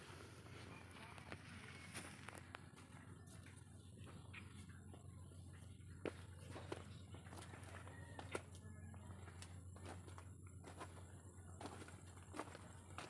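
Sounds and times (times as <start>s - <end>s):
low steady hum: 0.0s - 13.0s
faint footsteps: 0.4s - 13.0s.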